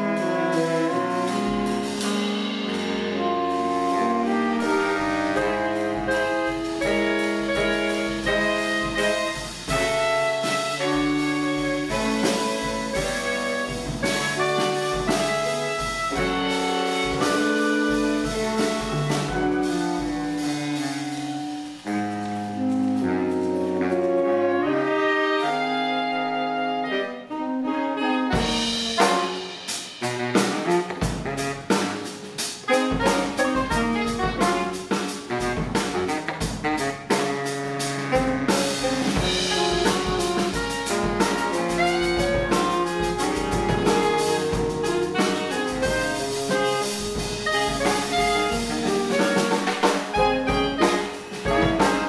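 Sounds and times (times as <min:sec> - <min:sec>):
drum kit beat: 0:00.0 - 0:26.4, 0:27.2 - 0:52.0
saxophone quartet playing chords: 0:00.0 - 0:52.0.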